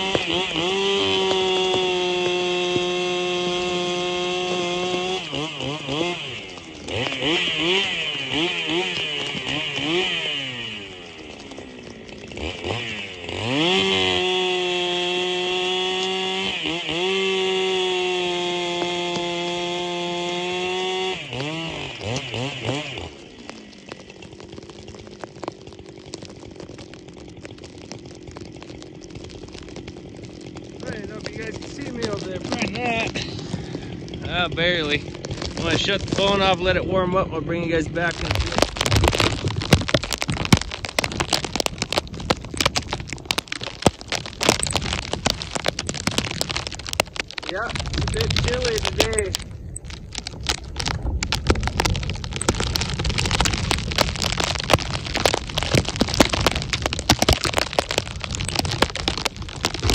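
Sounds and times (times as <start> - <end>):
chainsaw cutting a log: 0.0 - 59.9.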